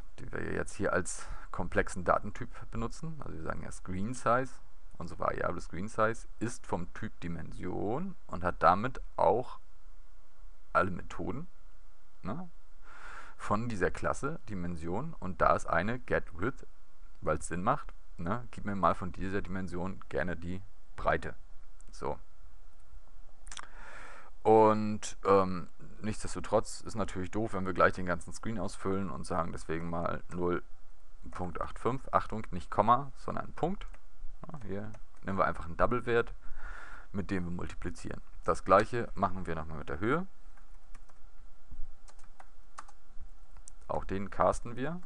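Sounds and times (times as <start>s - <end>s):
man speaking: 0.0s - 9.6s, 10.7s - 11.5s, 12.2s - 12.5s, 13.4s - 22.2s, 24.4s - 36.4s, 37.1s - 40.3s, 43.8s - 45.0s
faint low hum: 0.0s - 45.0s
computer mouse click: 40.6s - 41.2s, 42.0s - 43.0s.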